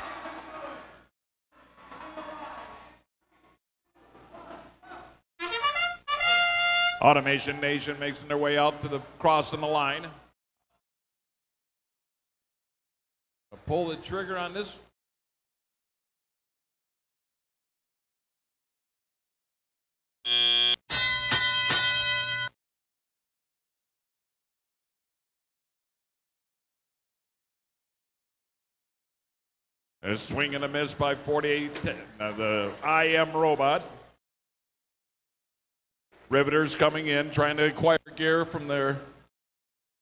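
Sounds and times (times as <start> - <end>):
faint crowd noise: 0.0 - 10.3
electronic buzzer: 20.3 - 21.4
chord signal blasts: 20.3 - 22.5
bell ringing: 20.3 - 22.6.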